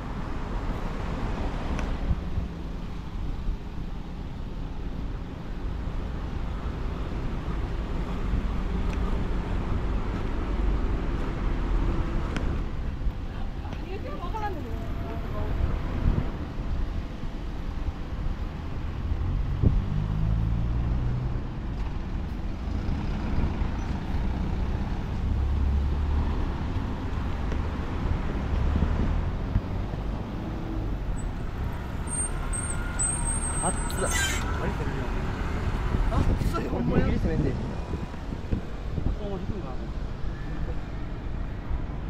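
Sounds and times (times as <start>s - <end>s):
road traffic rumble: 0.0s - 42.0s
thin high-pitched squeal: 32.0s - 34.8s.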